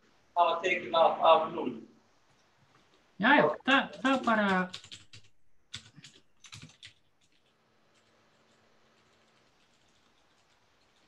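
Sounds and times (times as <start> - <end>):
computer keyboard typing: 3.9 - 11.0.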